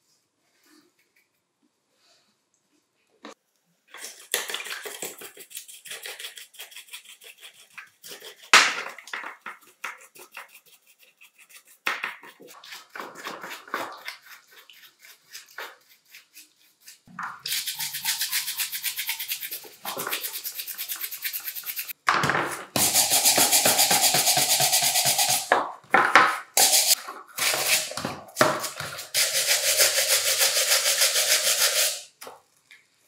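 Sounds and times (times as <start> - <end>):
brushes scrubbing in water: 4.0 - 22.0, 22.8 - 25.5, 26.6 - 32.1.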